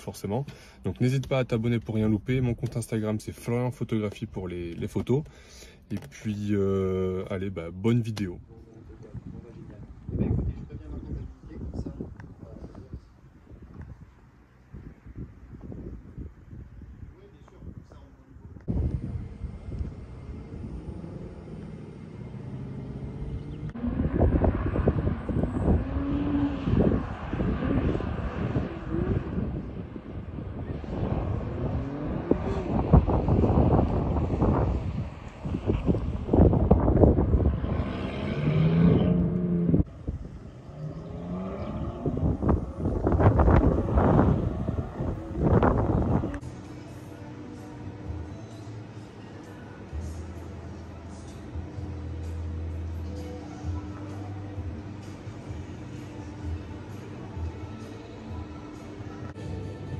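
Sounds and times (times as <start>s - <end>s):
sports car engines revving past: 18.6s - 59.9s.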